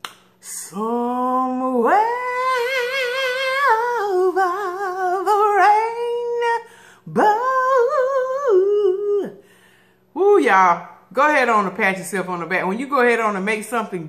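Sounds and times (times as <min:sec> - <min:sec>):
woman singing wordless melody: 0:00.4 - 0:09.5.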